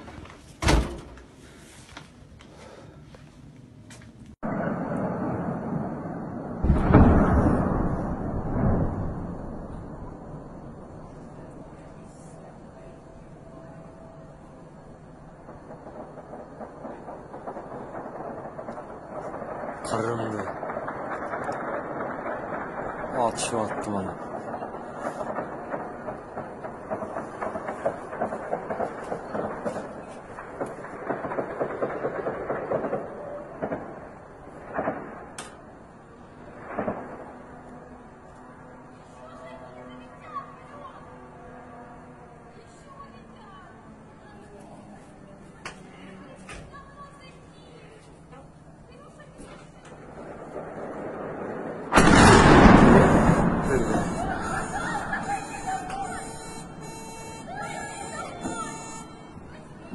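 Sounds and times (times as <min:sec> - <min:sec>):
explosion boom: 0:04.4 - 0:11.7, 0:15.3 - 0:35.4, 0:36.5 - 0:37.9, 0:50.0 - 0:59.9
distant automatic gunfire: 0:15.6 - 0:34.1, 0:50.3 - 0:57.4.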